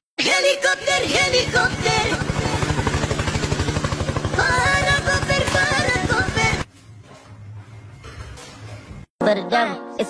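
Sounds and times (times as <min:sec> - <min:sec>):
helicopter rotor chopping: 0:00.8 - 0:06.7.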